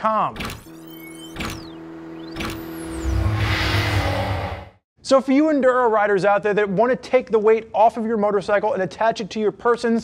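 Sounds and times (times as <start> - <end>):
held synth tone: 0.7 - 4.8
whoosh: 2.2 - 4.8
deep rumble: 2.9 - 4.8.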